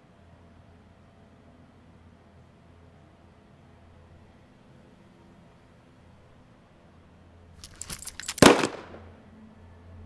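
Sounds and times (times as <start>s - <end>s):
handgun shot: 7.7s - 9.1s.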